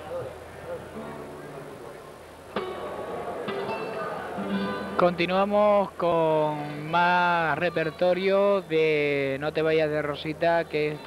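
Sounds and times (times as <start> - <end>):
plucked string notes ringing: 1.0 - 1.8, 2.5 - 5.4.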